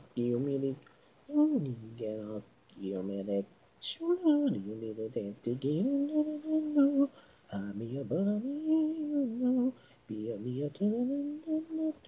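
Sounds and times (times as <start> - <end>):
woman singing a cappella: 0.1 - 12.0.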